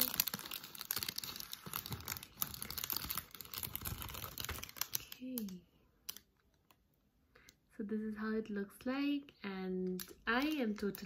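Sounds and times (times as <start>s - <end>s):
plastic bag crinkling: 0.0s - 6.3s, 10.0s - 11.0s.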